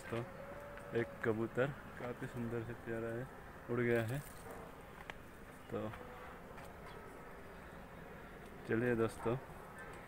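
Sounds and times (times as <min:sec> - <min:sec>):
outdoor background noise: 0:00.0 - 0:10.0
flying insect buzzing: 0:05.9 - 0:08.4.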